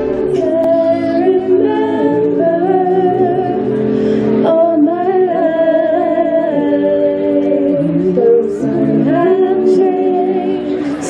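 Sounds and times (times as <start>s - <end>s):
guitar music: 0.0s - 11.0s
vocal group singing a cappella: 0.0s - 11.0s.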